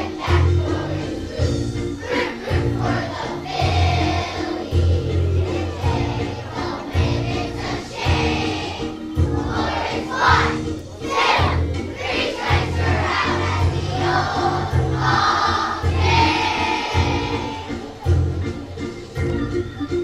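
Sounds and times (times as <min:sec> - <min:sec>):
children's choir singing: 0:00.0 - 0:18.9
instrumental accompaniment: 0:00.0 - 0:20.0.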